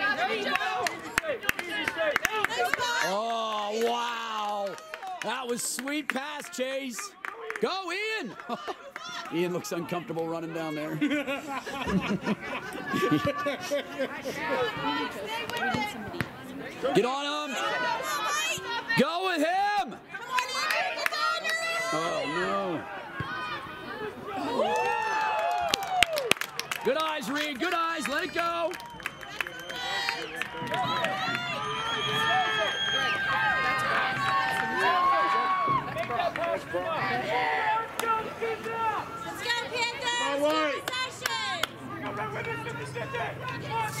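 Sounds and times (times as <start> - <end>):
people calling out and chatting: 0.0 - 44.0.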